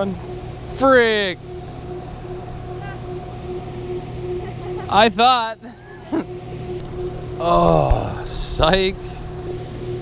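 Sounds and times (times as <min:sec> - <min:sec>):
constant low hum: 0:00.0 - 0:10.0
person laughing: 0:05.6 - 0:06.3.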